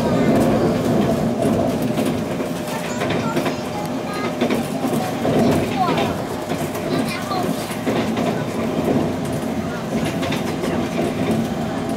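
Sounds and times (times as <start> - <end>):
train wheels rumbling on rail: 0.0 - 11.9.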